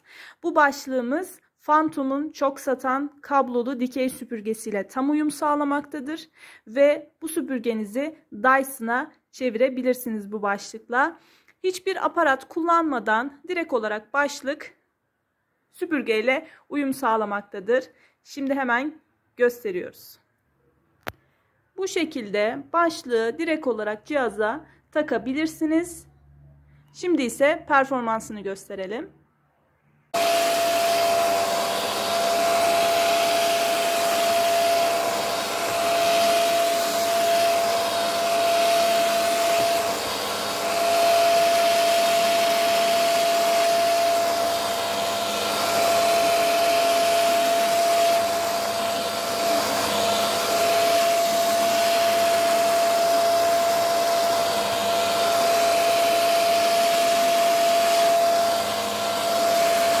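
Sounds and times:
vacuum cleaner motor whine: 0:30.2 - 1:00.0.

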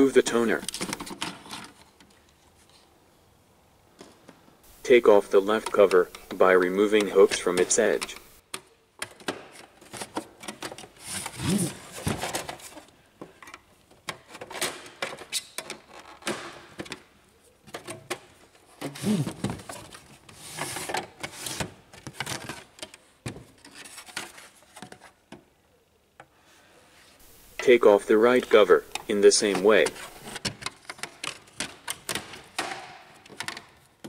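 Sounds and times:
plastic scraping on plastic: 0:28.7 - 0:32.3.

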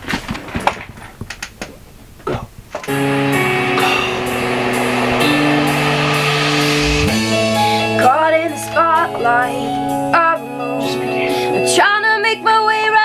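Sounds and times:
held synth chords: 0:02.9 - 0:10.1.

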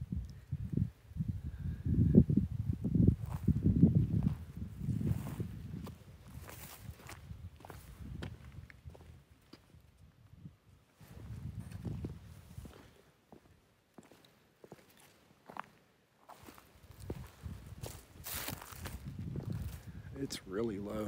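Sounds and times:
footsteps walking: 0:11.0 - 0:19.8.

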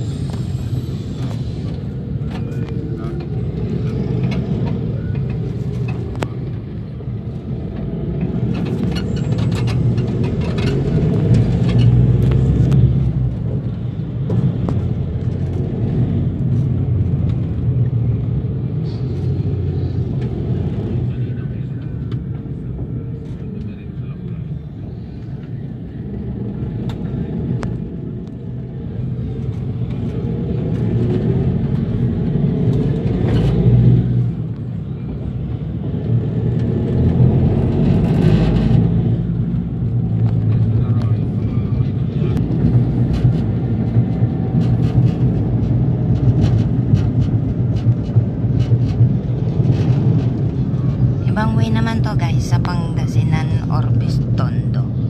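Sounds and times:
road and wind noise: 0:00.0 - 0:55.0
vehicle engine running: 0:00.0 - 0:55.0.

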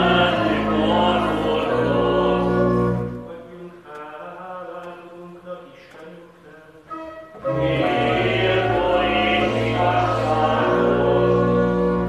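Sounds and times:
pipe organ chords: 0:00.0 - 0:03.9, 0:06.8 - 0:12.0.

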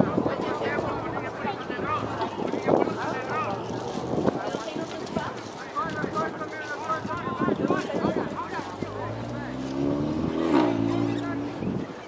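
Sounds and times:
voices: 0:00.0 - 0:12.0
motor engine droning: 0:08.8 - 0:11.6.

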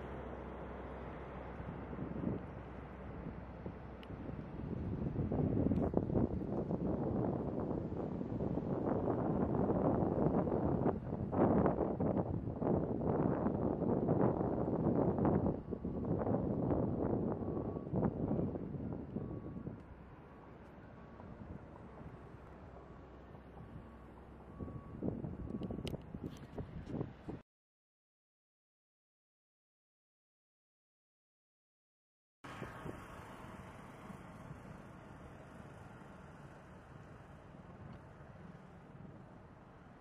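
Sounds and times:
distant helicopter flying low: 0:00.0 - 0:27.4, 0:32.5 - 0:40.0
wind gusting on microphone: 0:01.5 - 0:19.9, 0:23.6 - 0:27.4.

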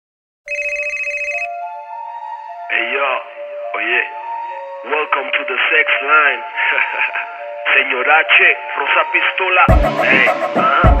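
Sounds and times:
telephone ringing: 0:00.5 - 0:01.5.

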